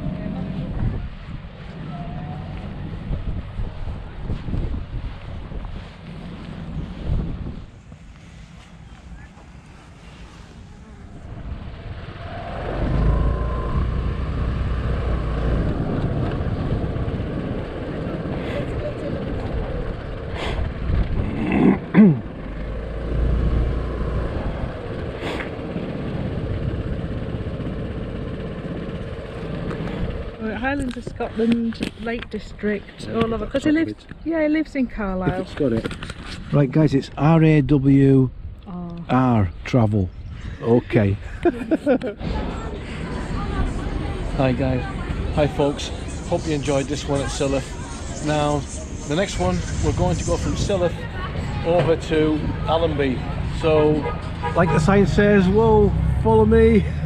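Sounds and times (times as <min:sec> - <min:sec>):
wind buffeting microphone: 0:00.4 - 0:09.8, 0:10.5 - 0:22.4.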